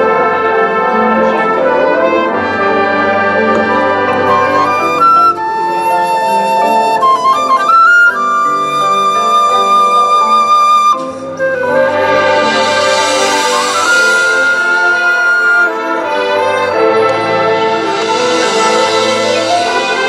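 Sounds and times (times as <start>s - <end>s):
low brass: 0.0s - 7.7s, 8.4s - 20.0s
marching band playing: 0.0s - 20.0s
woodwinds sustained high note: 0.0s - 20.0s.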